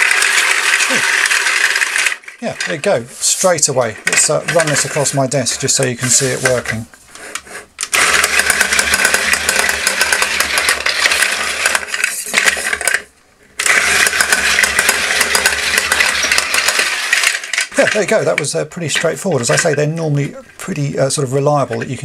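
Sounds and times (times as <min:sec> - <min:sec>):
toy electric motor and gears: 0:00.0 - 0:05.2, 0:06.2 - 0:19.9.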